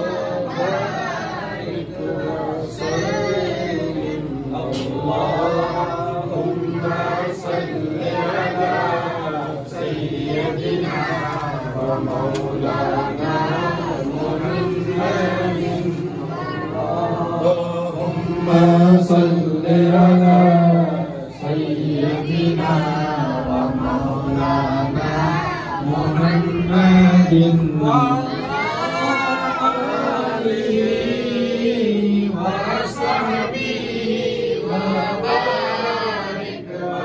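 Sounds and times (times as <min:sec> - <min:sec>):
men chanting together: 0:00.0 - 0:37.0.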